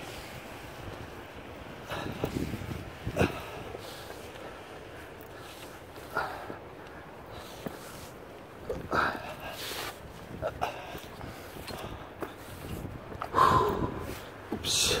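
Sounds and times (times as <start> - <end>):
wind noise on microphone: 0.0 - 15.0.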